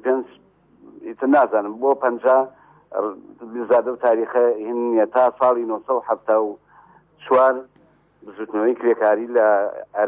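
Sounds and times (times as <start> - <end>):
man talking: 0.0 - 6.6, 7.2 - 10.0.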